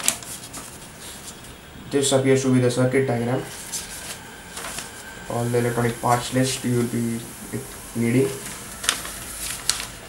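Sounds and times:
paper crackle: 0.0 - 1.6, 3.4 - 10.0
paper sheet rustling: 0.0 - 1.6, 3.4 - 10.0.

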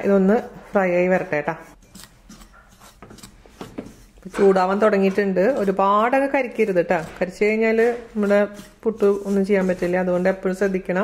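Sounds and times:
spatula scraping rice flour in pan: 0.0 - 11.0.

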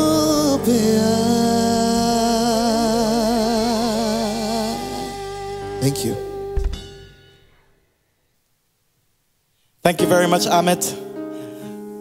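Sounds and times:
man singing sustained note: 0.0 - 7.0
band accompaniment: 3.9 - 7.5.

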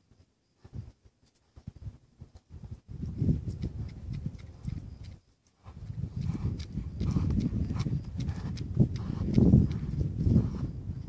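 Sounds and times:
hoofbeats in deep sand: 0.0 - 11.0.

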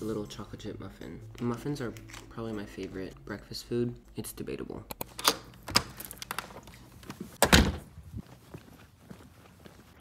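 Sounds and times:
door shutting with a thud: 7.4 - 7.9.

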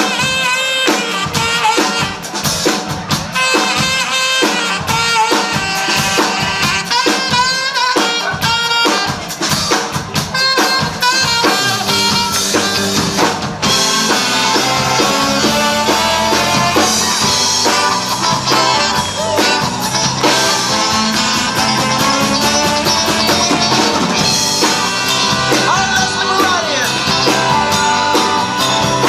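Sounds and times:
saxophones playing: 0.0 - 2.4, 3.3 - 9.5, 10.3 - 29.0
drum kit: 0.0 - 29.0.

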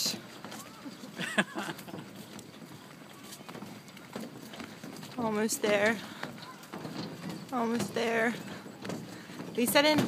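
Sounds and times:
footsteps on footbridge deck: 0.0 - 10.0.

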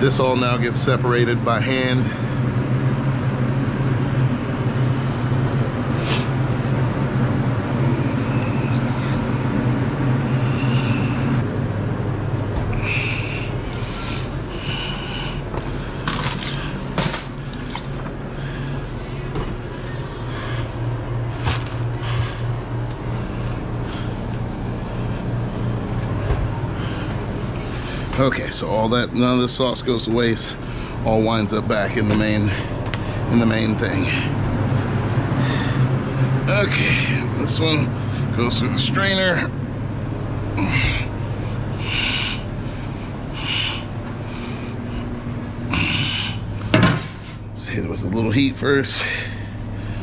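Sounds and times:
machine low hum: 0.0 - 50.0.

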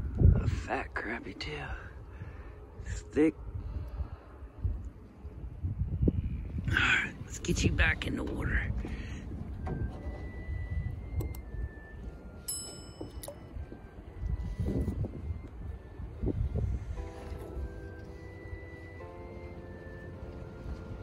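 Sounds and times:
wind rumble on microphone: 0.0 - 21.0
sparse background music: 0.1 - 21.0.

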